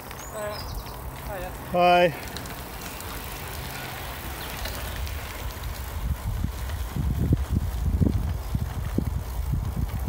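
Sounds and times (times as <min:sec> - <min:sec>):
bicycle tyre noise on tarmac: 0:00.0 - 0:10.0
wind across microphone: 0:04.2 - 0:10.0.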